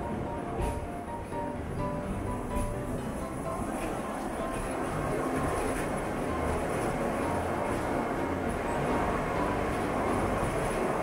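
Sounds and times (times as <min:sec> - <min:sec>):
rack railcar rumbling: 0:00.0 - 0:11.0.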